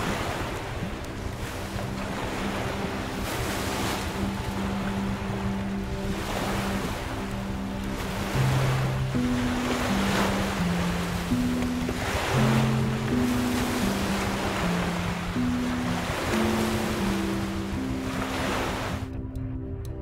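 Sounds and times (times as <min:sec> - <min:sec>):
waves washing onto shore: 0:00.0 - 0:19.2
slow music of low notes: 0:00.0 - 0:20.0
wind: 0:00.0 - 0:20.0.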